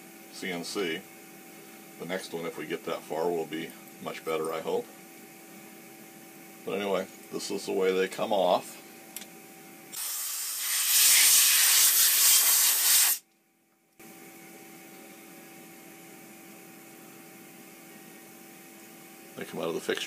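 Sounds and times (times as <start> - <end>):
faint electrical hum: 0.0 - 20.0
compressed air hissing: 10.0 - 13.2.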